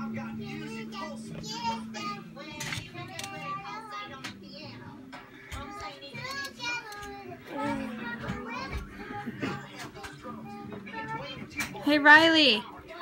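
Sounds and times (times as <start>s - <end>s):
background music: 0.0s - 13.0s
children's voices: 0.5s - 11.7s.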